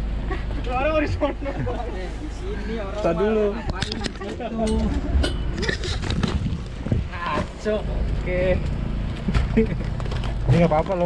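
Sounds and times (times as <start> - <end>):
knocks and clinks on metal floor: 3.8 - 6.2.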